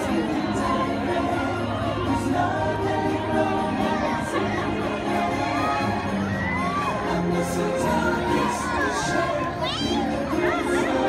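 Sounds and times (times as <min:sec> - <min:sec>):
parade music: 0:00.0 - 0:11.0
children shouting: 0:03.8 - 0:11.0
crowd cheering: 0:03.8 - 0:11.0.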